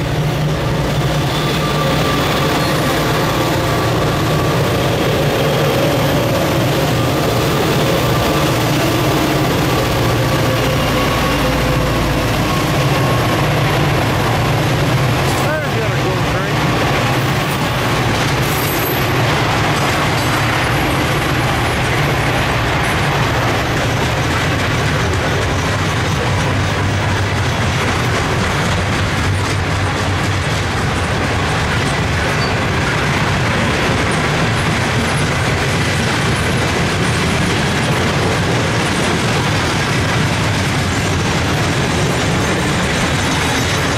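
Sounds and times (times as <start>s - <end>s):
diesel locomotives rumbling: 0.0s - 43.9s
freight cars clattering over rails: 0.0s - 43.9s.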